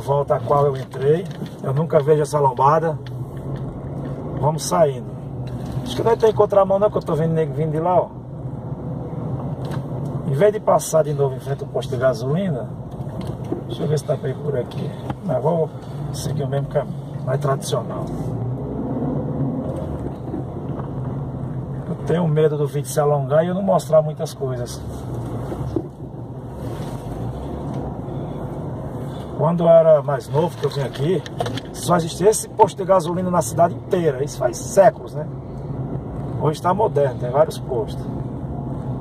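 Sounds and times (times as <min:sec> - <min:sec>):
car engine and tyres hum: 0:00.0 - 0:39.0.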